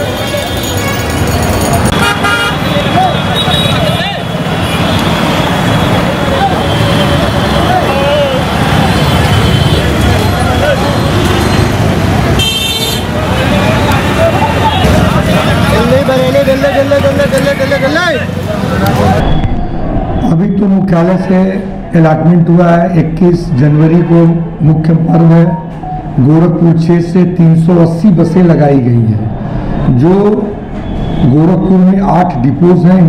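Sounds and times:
people's voices: 0.0 - 12.4, 13.0 - 33.0
bus engines running: 0.0 - 20.3
vehicle horn toot: 1.9 - 4.0, 12.4 - 13.1.

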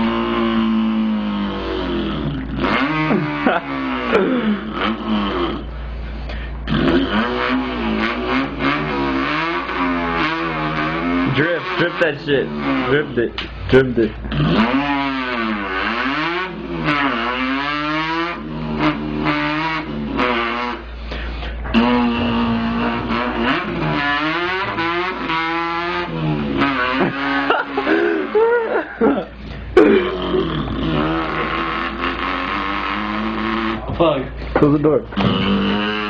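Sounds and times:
man imitating a car engine: 0.0 - 36.0.

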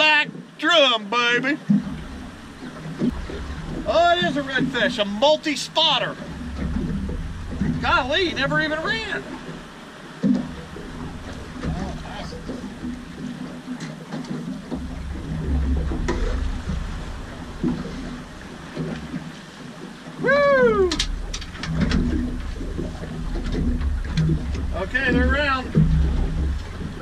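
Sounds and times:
water moving around boat: 0.0 - 27.0
wind buffeting microphone: 1.6 - 27.0.

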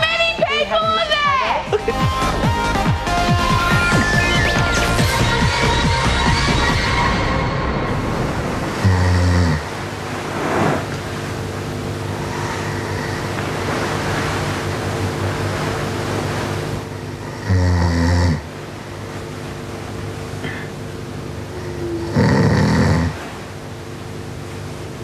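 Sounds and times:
man snoring: 8.8 - 9.7, 17.3 - 18.5, 21.6 - 23.2.

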